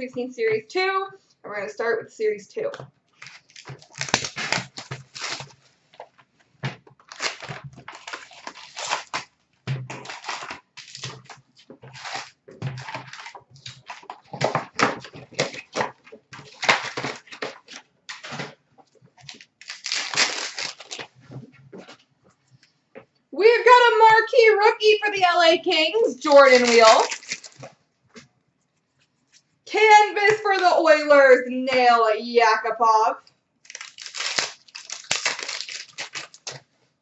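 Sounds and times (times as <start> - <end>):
cardboard and foil wrappers tearing: 3.2 - 5.7, 7.0 - 18.5, 19.2 - 21.1, 26.2 - 27.7, 33.6 - 36.6.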